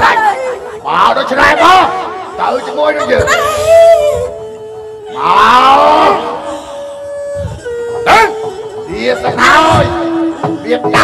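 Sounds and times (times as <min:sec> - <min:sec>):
steady held musical tone: 0:00.3 - 0:11.0.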